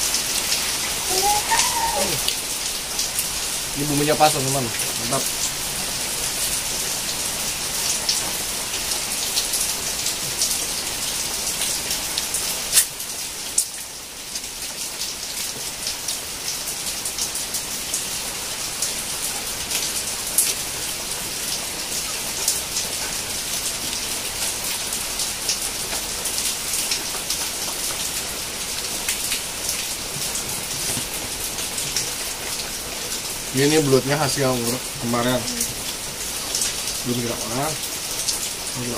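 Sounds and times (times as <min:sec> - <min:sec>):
sharp raindrops ticking: 0:00.0 - 0:38.9
steady rain falling: 0:00.0 - 0:38.9.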